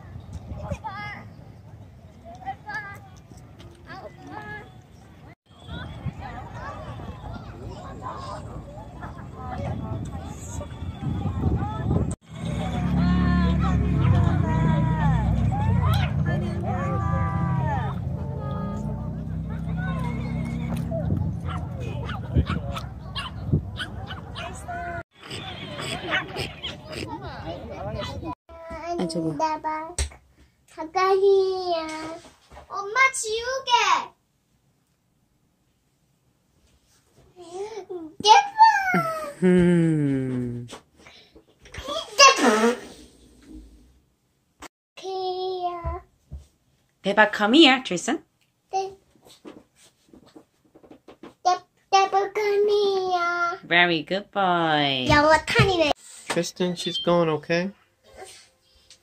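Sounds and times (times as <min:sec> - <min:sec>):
children chattering and squealing: 0:02.4 - 0:28.8
young child murmuring: 0:38.8 - 0:40.8.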